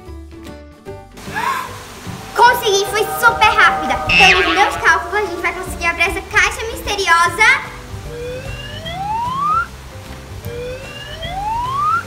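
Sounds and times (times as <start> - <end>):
rising whistle-like sound effect: 1.6 - 6.8.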